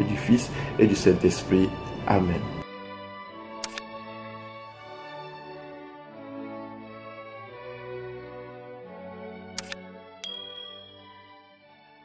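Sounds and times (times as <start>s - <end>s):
soft background music: 0.0s - 12.0s
click: 3.6s - 3.9s, 9.6s - 9.8s
bright ding: 10.2s - 11.2s.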